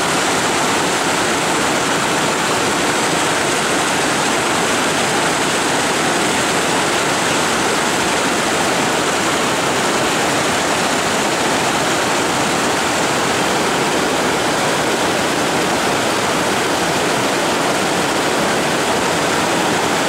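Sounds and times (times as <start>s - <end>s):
river rapids rushing: 0.0s - 20.0s.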